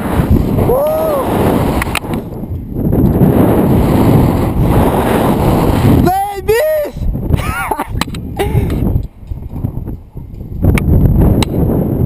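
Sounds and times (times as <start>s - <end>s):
wind rushing over microphone: 0.0s - 12.0s
person shouting: 0.7s - 1.3s, 6.0s - 7.8s.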